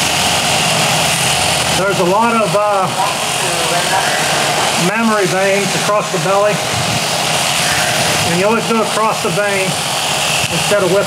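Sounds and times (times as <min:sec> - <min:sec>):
electric shears humming: 0:00.0 - 0:11.0
shears clipping wool: 0:00.0 - 0:11.0.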